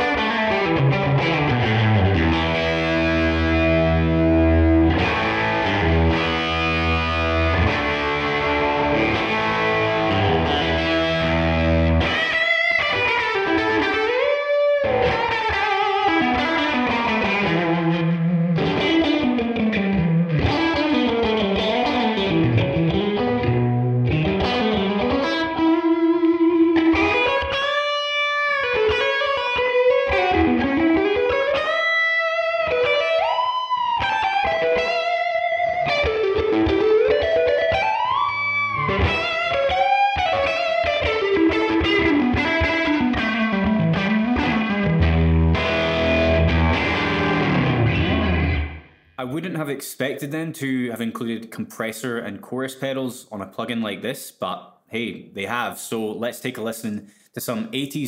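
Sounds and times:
overdriven electric guitar solo: 0.0s - 49.2s.

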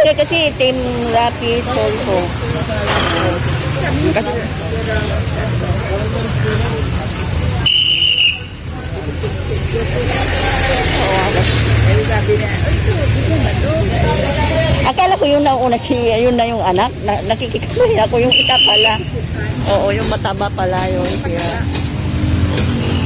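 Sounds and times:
people talking: 0.0s - 21.9s
vehicle engines rumbling: 0.0s - 23.0s
short high whistle blast: 7.6s - 8.5s.

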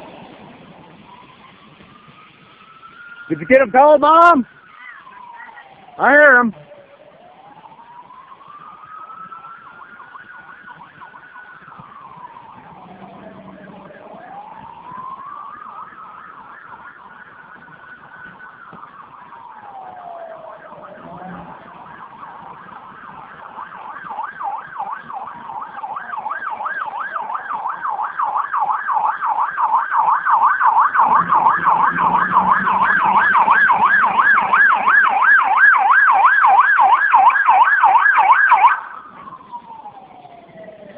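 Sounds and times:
siren wailing: 0.8s - 40.9s
siren yelping: 0.9s - 40.9s.

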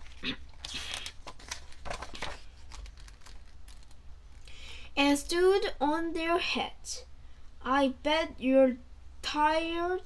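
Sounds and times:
book pages turning: 0.0s - 4.4s.

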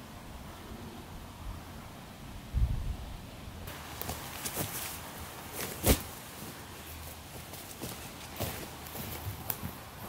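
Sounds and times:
footsteps on pine needles: 3.7s - 10.0s.

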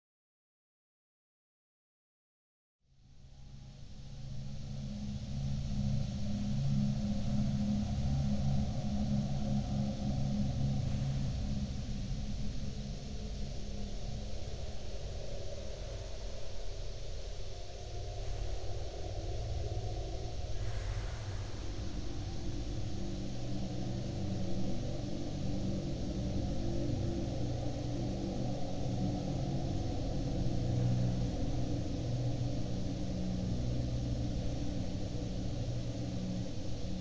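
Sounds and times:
faint hiss: 3.0s - 37.0s
ambient drone music: 3.3s - 37.0s.

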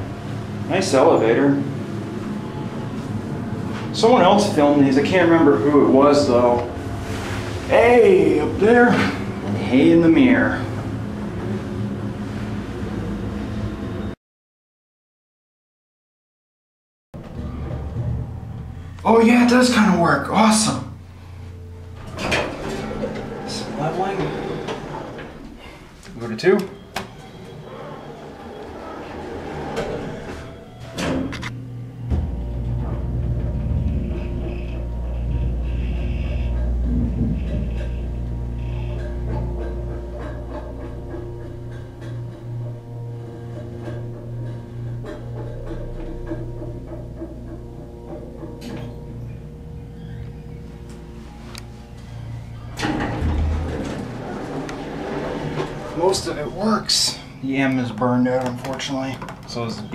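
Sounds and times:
elevator motor low hum: 0.0s - 14.2s, 17.2s - 59.9s
elevator door thump and rattle: 28.8s - 35.6s, 36.5s - 38.4s, 52.6s - 56.8s
elevator door knock: 32.0s - 42.8s.

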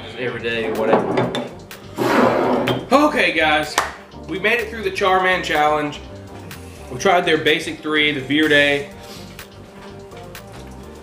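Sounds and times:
glass bottle knocking on wood: 0.7s - 1.6s.

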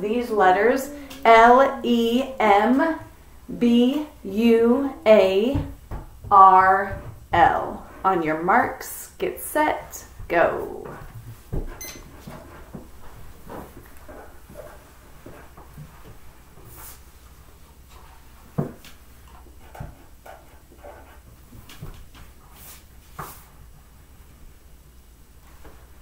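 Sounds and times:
pencils tapping on paper: 18.5s - 22.2s.

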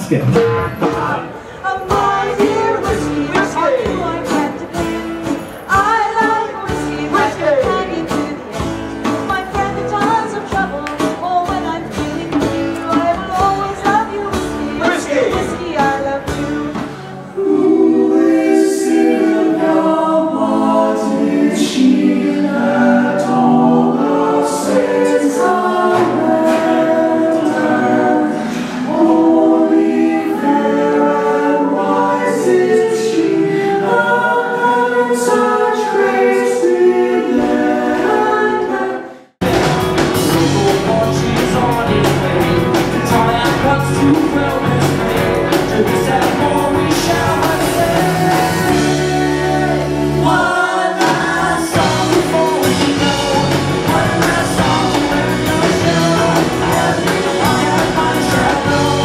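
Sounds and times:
strummed acoustic guitars: 0.0s - 17.3s, 39.4s - 59.0s
voices singing: 0.0s - 59.0s
voices singing a cappella: 0.8s - 39.3s, 40.2s - 59.0s
drum beating: 39.4s - 49.1s, 51.0s - 59.0s.

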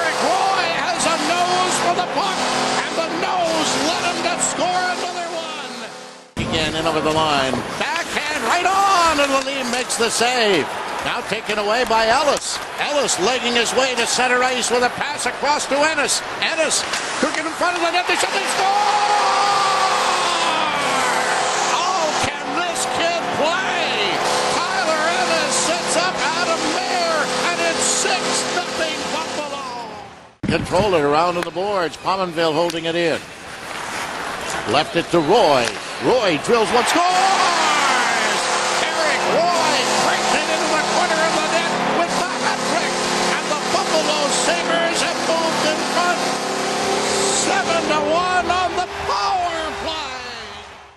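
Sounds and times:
crowd cheering and shouting: 0.0s - 5.8s, 6.4s - 33.0s, 34.5s - 50.9s
arena goal horn: 0.0s - 6.2s, 17.8s - 30.0s, 36.8s - 50.3s.

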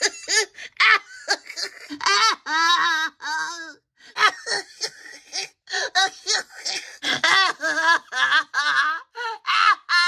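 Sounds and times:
woman laughing: 7.1s - 10.0s.

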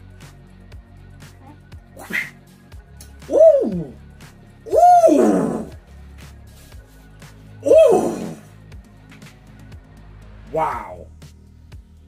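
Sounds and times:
person hooting whoops: 2.0s - 2.4s, 3.3s - 4.0s, 4.7s - 5.7s, 7.6s - 8.4s.

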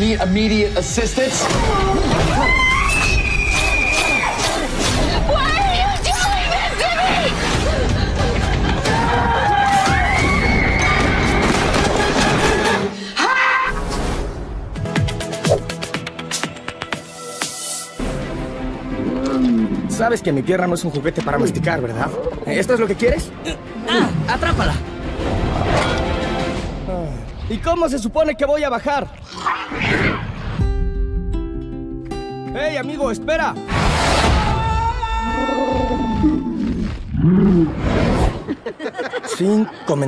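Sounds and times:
film trailer music: 0.0s - 38.6s
dragon's low growl: 35.8s - 38.5s.

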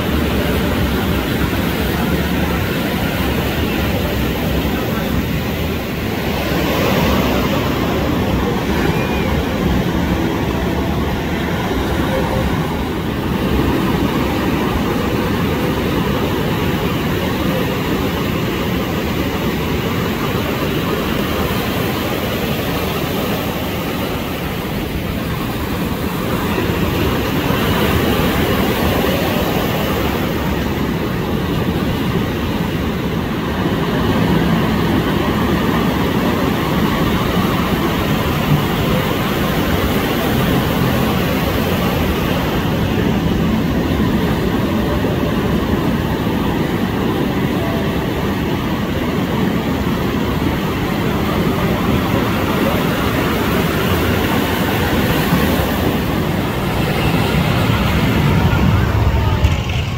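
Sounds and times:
ocean surf rumbling: 0.0s - 59.9s.

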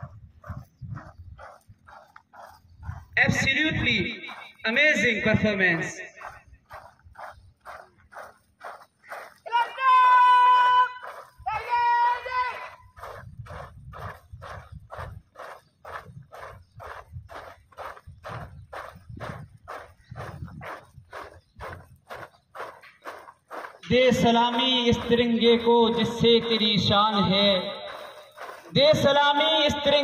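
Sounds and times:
drill beats: 22.7s - 30.0s.

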